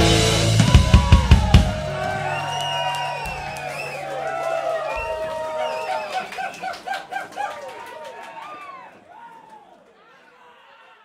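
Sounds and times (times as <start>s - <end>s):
audience cheering and clapping: 0.0s - 11.0s
person hooting whoops: 0.7s - 9.3s.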